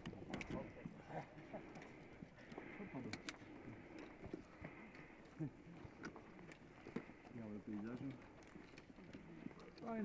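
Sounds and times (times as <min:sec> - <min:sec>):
footsteps on loose rocks: 0:00.0 - 0:10.0.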